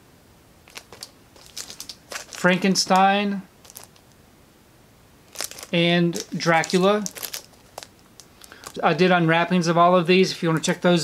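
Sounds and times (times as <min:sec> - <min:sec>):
plastic wrapping crinkling: 0:00.6 - 0:04.2, 0:05.3 - 0:09.0, 0:10.5 - 0:11.0.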